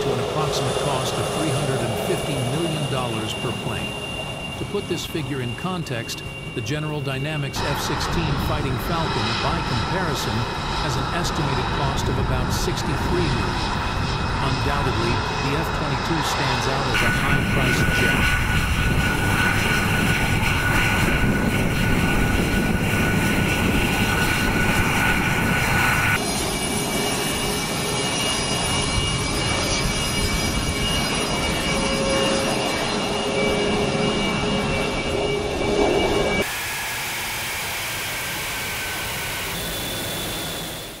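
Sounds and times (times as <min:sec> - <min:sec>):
jet engine whine and rush: 0:00.0 - 0:41.0.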